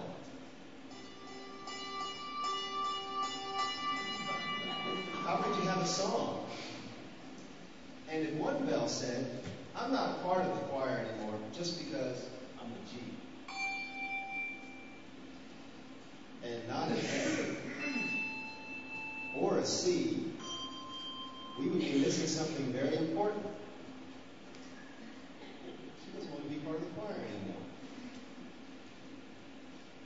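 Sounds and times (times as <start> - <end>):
handbells ringing: 0.9 - 6.3, 13.5 - 15.0, 17.8 - 21.9.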